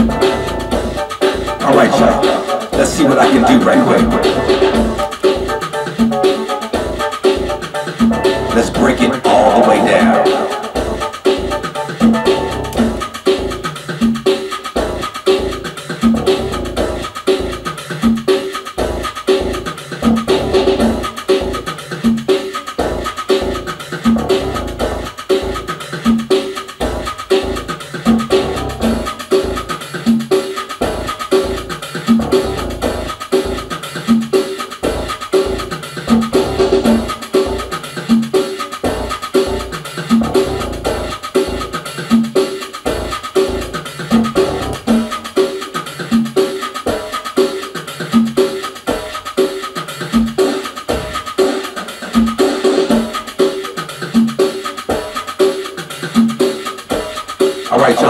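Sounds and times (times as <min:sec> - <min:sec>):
drum machine latin groove: 0:00.0 - 0:58.0
synth parts: 0:01.5 - 0:05.2, 0:07.7 - 0:12.7.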